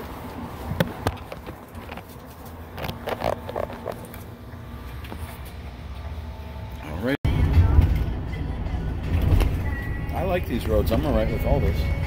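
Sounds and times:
van engine and road rumble: 0.0 - 12.0.

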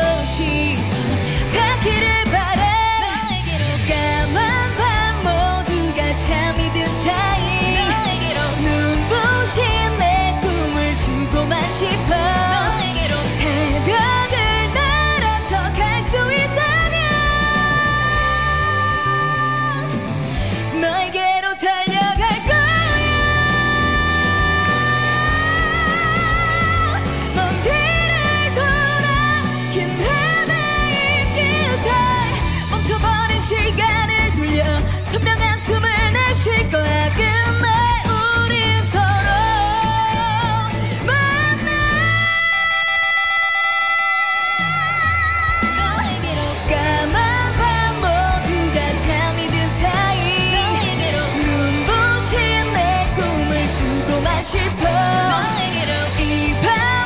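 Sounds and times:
rock accompaniment with bass line: 0.0 - 42.6, 44.6 - 57.0
backing band: 0.0 - 57.0
woman singing pop: 0.0 - 57.0.

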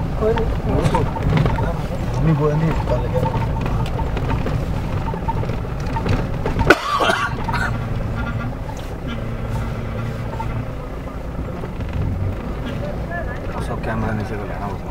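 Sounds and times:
vehicle engine and road rumble: 0.0 - 14.9
voices of people outside: 0.0 - 14.9.

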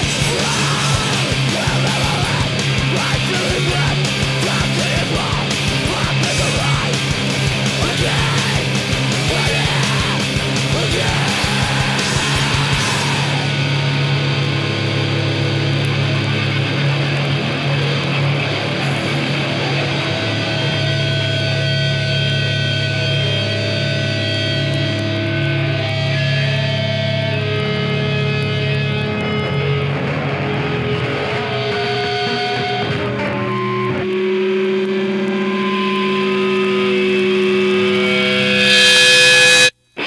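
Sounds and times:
distorted guitar and bass chord: 0.0 - 40.0.

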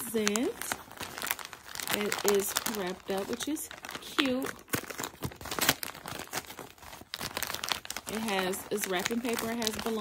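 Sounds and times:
wrapping paper crinkling: 0.0 - 10.0.

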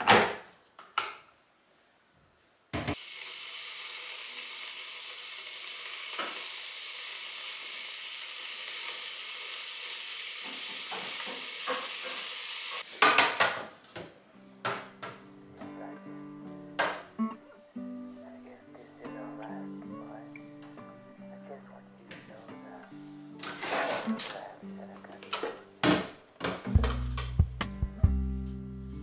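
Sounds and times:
kettle hissing as water heats: 2.8 - 12.9
soft guitar music: 14.3 - 29.0.

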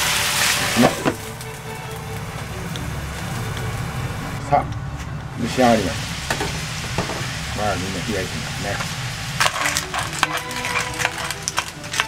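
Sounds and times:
metal spoon clattering on shells: 9.4 - 12.0.

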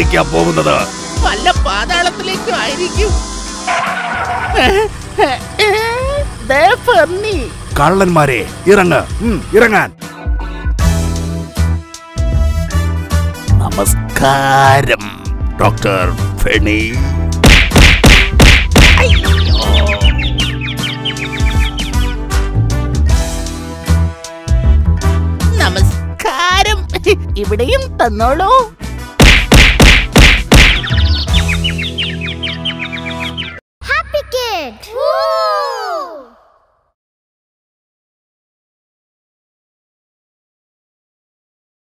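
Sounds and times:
background music: 0.0 - 7.4, 8.0 - 35.1
cartoon whacks: 17.4 - 19.4, 29.2 - 31.0
high bird-like chirps: 19.0 - 22.2, 30.5 - 33.6
high-pitched vocal cry: 34.7 - 36.5.

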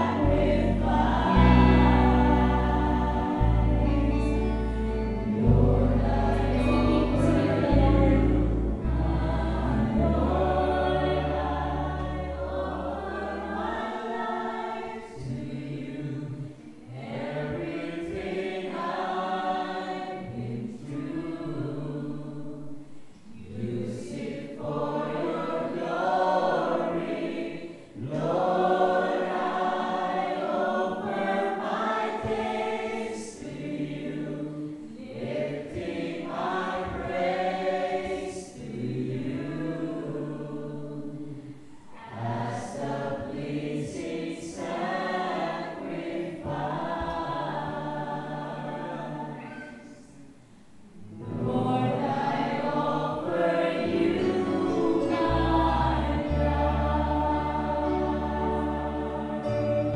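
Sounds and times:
low bass notes: 0.0 - 12.8, 51.0 - 52.2, 53.9 - 59.9
group singing worship song: 0.0 - 59.9.

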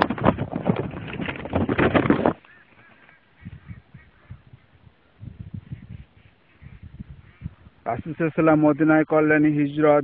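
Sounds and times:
birds honking: 2.3 - 9.9.

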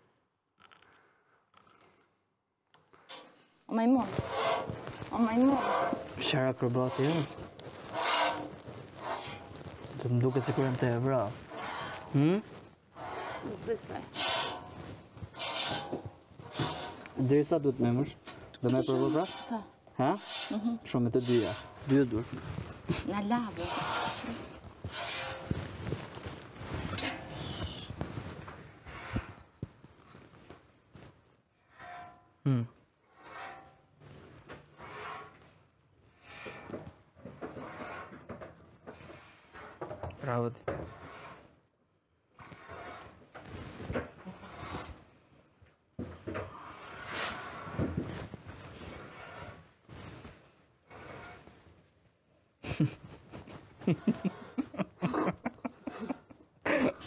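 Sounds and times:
rustles: 3.1 - 32.2, 42.4 - 45.2, 46.1 - 52.0, 52.6 - 57.0.

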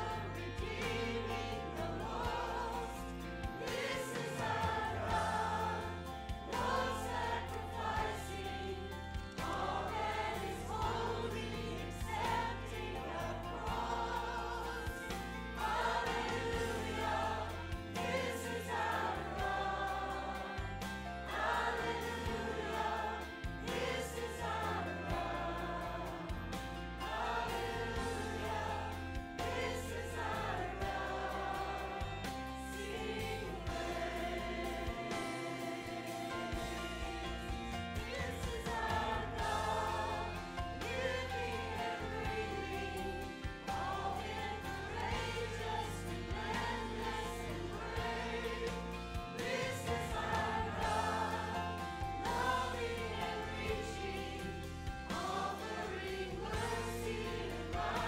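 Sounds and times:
mixed choir singing: 0.0 - 58.0.

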